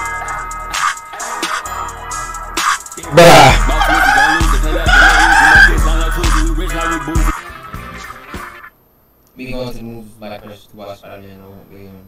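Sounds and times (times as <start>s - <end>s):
hip hop music with booming bass: 0.0s - 8.7s
voice over music: 3.0s - 8.6s.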